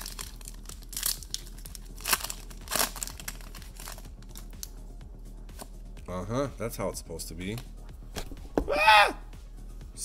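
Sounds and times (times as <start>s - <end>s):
foil pack tearing and crinkling: 0.0s - 4.5s.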